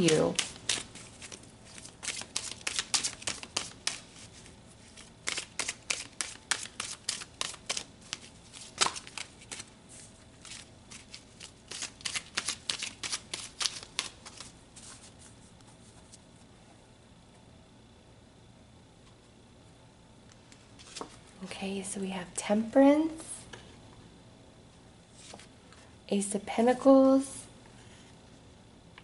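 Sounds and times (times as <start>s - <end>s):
cards being shuffled: 0.0s - 16.2s, 20.8s - 21.3s.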